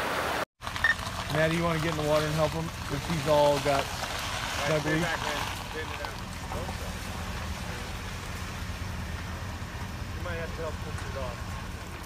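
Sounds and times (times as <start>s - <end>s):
vehicle engine idling: 0.6s - 12.0s.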